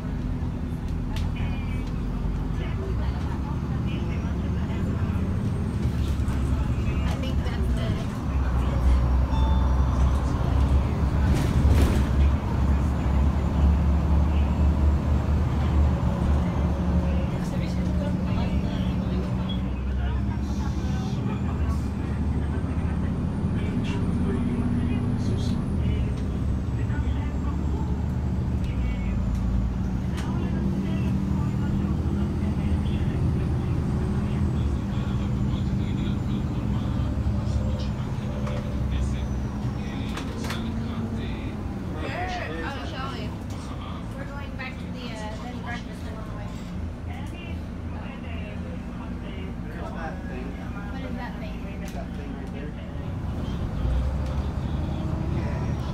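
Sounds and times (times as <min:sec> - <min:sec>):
bus engine drone: 0:00.0 - 0:55.9
road noise: 0:00.0 - 0:55.9.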